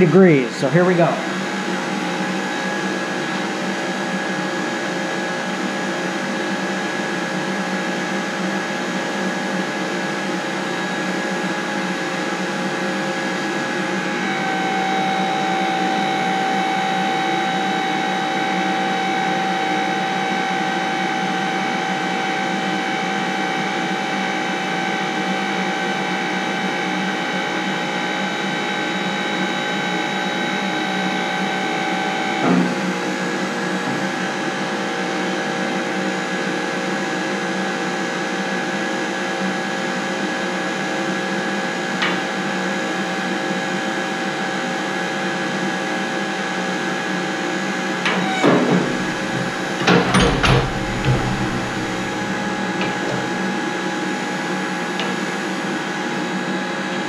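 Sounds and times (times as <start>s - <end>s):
tube bender motor hum and whine: 0.0s - 57.0s
machine clunk: 48.1s - 53.5s.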